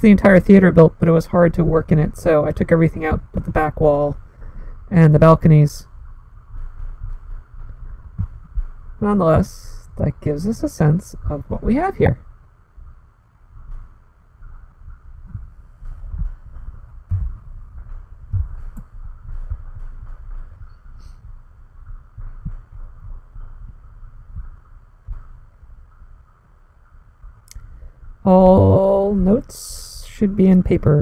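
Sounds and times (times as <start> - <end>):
faint steady hiss: 0.0 - 31.0
soft low thuds: 2.7 - 10.3, 11.2 - 29.4
faint clicks: 24.5 - 27.8.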